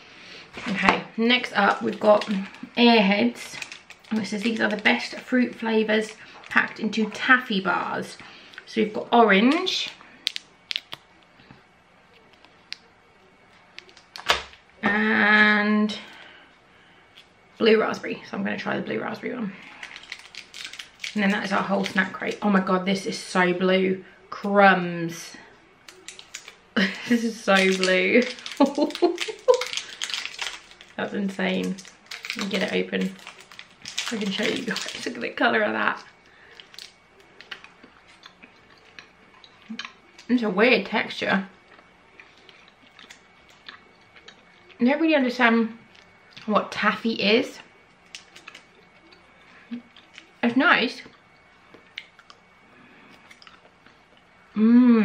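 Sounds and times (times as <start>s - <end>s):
candy wrappers crinkling: 0.6s - 11.4s, 13.5s - 14.6s, 19.6s - 22.7s, 25.8s - 40.4s, 41.1s - 44.8s, 48.0s - 50.5s
chewing taffy: 19.6s - 22.2s, 25.8s - 40.4s, 41.5s - 44.8s, 48.0s - 50.4s, 51.0s - 54.3s
person murmuring: 54.6s - 55.0s.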